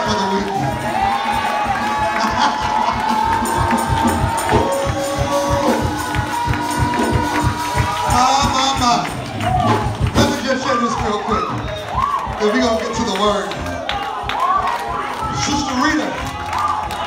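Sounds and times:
congregation cheering and shouting: 0:00.0 - 0:17.0
gospel music with fast drum beat: 0:00.0 - 0:17.0.

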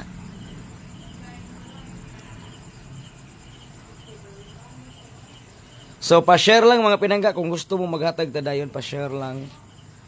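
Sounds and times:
crickets chirping: 0:00.0 - 0:10.0
low background hum: 0:00.0 - 0:10.0.

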